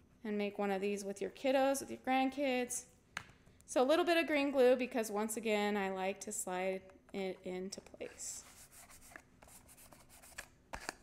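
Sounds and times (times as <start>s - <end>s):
hands rubbing paper on cardboard: 8.3s - 10.5s.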